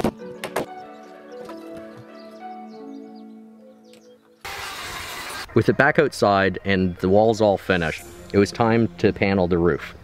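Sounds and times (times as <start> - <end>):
background music sustained notes: 0.0 - 4.8, 6.8 - 10.0
power tool whirring: 4.4 - 5.5.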